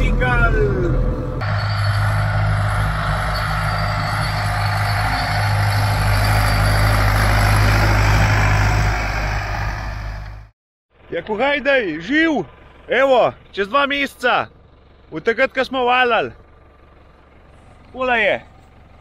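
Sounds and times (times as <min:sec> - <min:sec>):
tractor diesel engine under load: 0:00.0 - 0:19.0.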